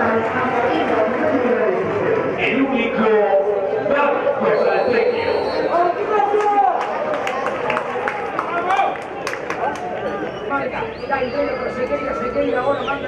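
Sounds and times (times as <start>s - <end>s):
men calling out and talking: 0.0s - 7.2s, 8.2s - 13.0s.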